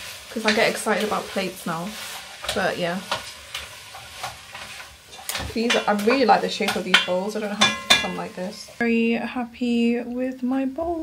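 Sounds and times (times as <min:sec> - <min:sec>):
ceramic bowls knocking and scraping: 0:06.8 - 0:08.3.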